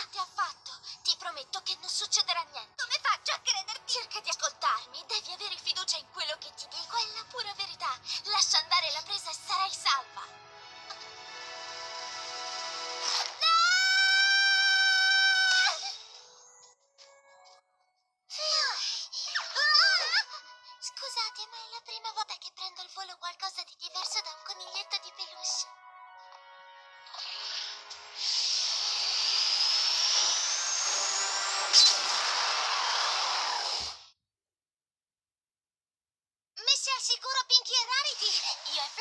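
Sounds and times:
cartoon woman screaming: 0:13.4 - 0:15.9
whooshing hiss: 0:27.2 - 0:34.0
sharp burst: 0:27.3 - 0:34.1.

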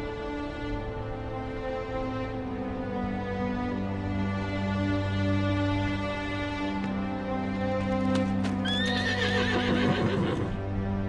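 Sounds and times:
background music: 0:00.0 - 0:11.0
horse whinnying: 0:08.6 - 0:10.6.

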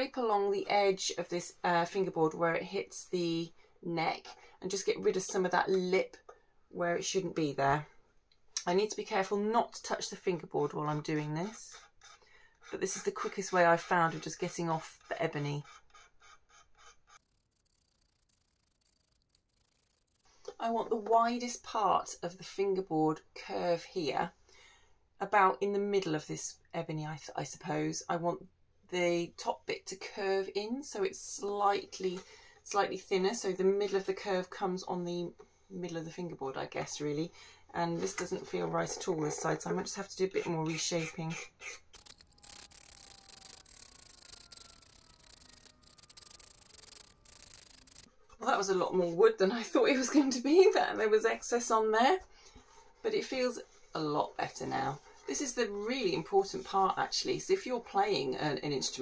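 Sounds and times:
hand scraper on wood: 0:10.6 - 0:20.4.

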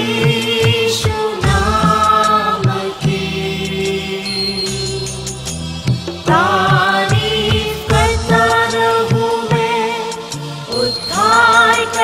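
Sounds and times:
group singing devotional song: 0:00.0 - 0:05.1, 0:06.2 - 0:12.0
instrumental backing: 0:00.0 - 0:12.0.

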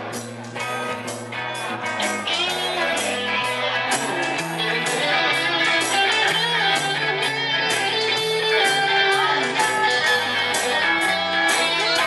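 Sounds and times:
bass line: 0:00.0 - 0:12.0
electric guitar: 0:00.0 - 0:12.0.

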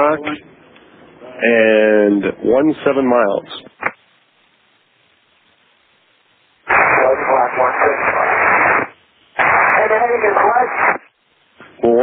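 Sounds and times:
voice over radio: 0:06.7 - 0:08.8, 0:09.4 - 0:11.0.

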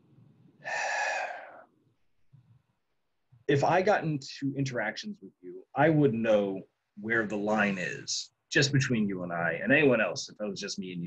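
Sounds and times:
man breathing into microphone: 0:00.6 - 0:01.6.

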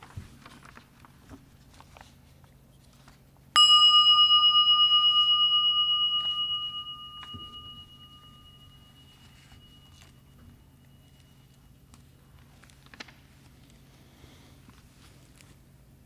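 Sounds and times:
bell ringing: 0:03.6 - 0:11.9.

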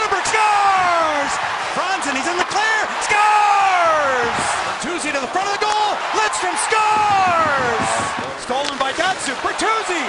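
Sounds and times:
arena crowd noise: 0:00.0 - 0:10.0
excited sports commentary: 0:00.0 - 0:10.0.

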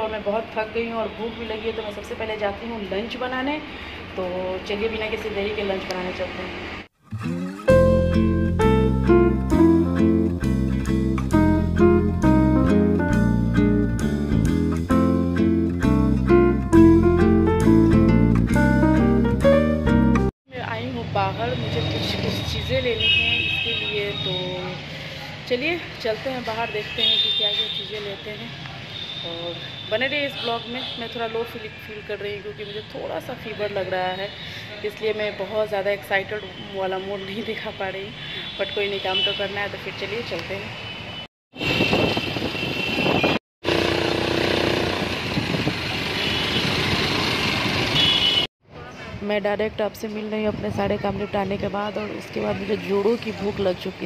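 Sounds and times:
woman talking: 0:00.0 - 0:06.6, 0:20.5 - 0:28.6, 0:29.3 - 0:40.7, 0:49.2 - 0:54.0
road traffic: 0:00.0 - 0:09.1, 0:20.6 - 0:54.0
steady pitched tone: 0:07.0 - 0:09.8
higher tones: 0:07.0 - 0:10.3.

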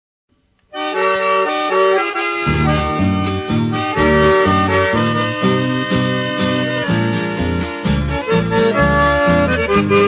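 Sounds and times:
accordion playing held chords: 0:00.7 - 0:10.0
deep bass notes: 0:01.7 - 0:10.0.

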